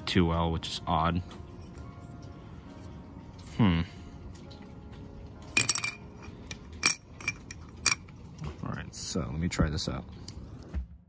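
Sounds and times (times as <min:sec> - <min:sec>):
metal clicks and clinks: 0:05.5 - 0:08.2.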